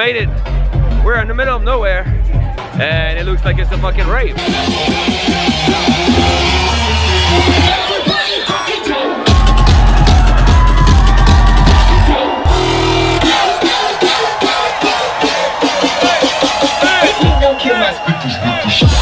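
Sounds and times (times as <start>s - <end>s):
electronic bass music: 0.2s - 19.0s.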